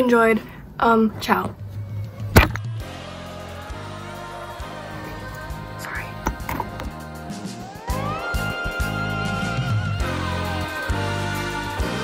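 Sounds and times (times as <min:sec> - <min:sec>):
soft background music: 0:01.0 - 0:12.0.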